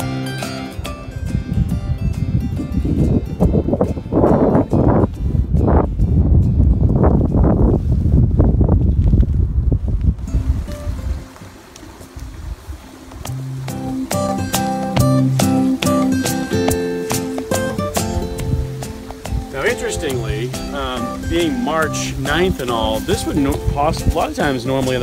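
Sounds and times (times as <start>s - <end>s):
acoustic guitar music: 0.0s - 8.1s, 10.2s - 25.0s
wind buffeting microphone: 0.0s - 25.0s.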